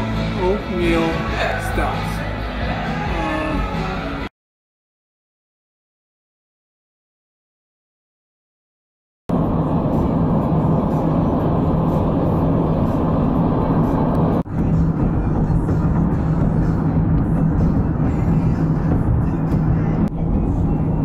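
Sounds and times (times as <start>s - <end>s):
car road and engine rumble: 9.3s - 21.0s.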